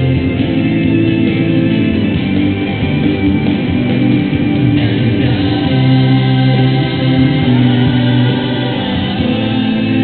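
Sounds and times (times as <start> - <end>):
choir singing a hymn: 4.8 - 10.0.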